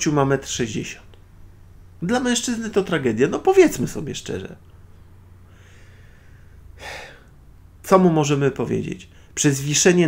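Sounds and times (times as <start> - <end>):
low steady hum: 0.0 - 10.0
man breathing: 5.4 - 7.4.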